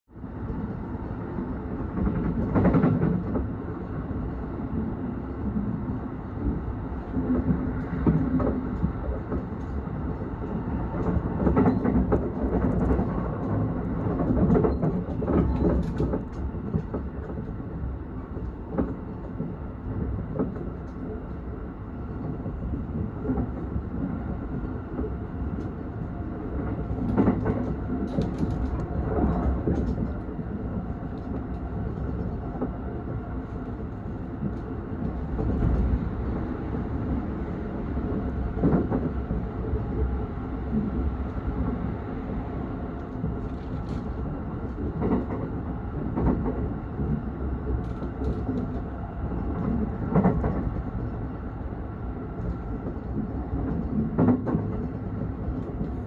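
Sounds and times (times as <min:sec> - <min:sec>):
passing train: 0:00.1 - 0:56.0
train wheels rumbling on rail: 0:00.2 - 0:56.0.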